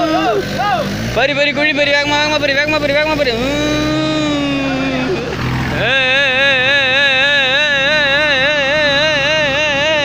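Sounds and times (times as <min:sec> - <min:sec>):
held voice note: 0:03.3 - 0:10.0
person singing with vibrato: 0:03.4 - 0:10.0.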